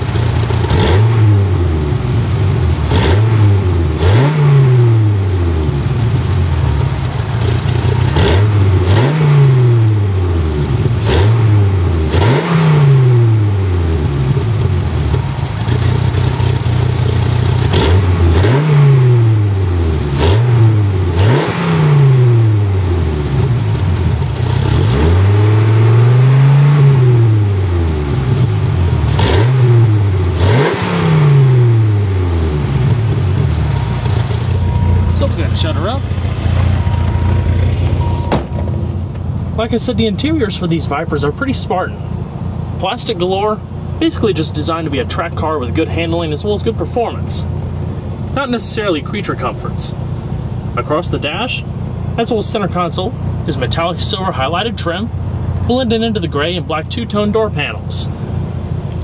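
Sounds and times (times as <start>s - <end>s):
sports car engine revving: 0.0s - 54.5s.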